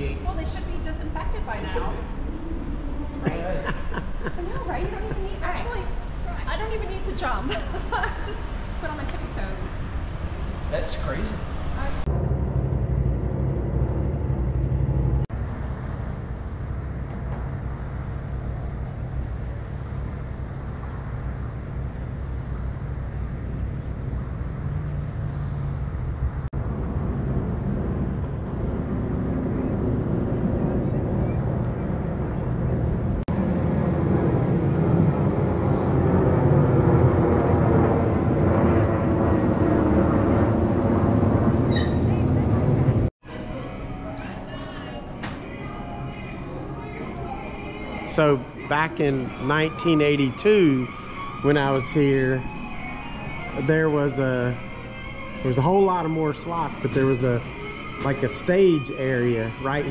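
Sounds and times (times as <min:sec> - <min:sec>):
street traffic rumble: 0:00.0 - 0:59.9
vehicle passing close: 0:11.4 - 0:43.1.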